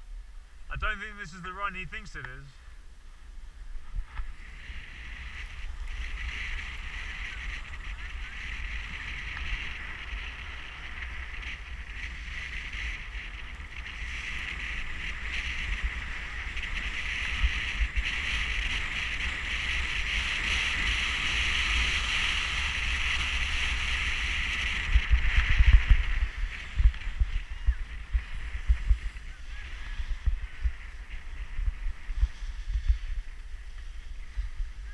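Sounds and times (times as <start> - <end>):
wind rumbling on microphone: 0.0 - 34.9
skis sliding over snow: 3.8 - 34.9.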